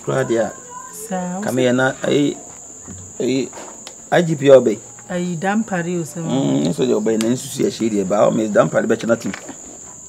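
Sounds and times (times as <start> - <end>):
crickets chirring: 0.0 - 10.0
man's voice: 1.4 - 2.4.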